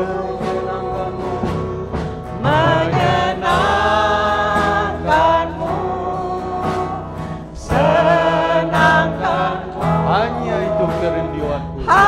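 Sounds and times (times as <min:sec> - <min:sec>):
acoustic guitar: 0:00.0 - 0:12.0
voices singing together: 0:00.0 - 0:12.0.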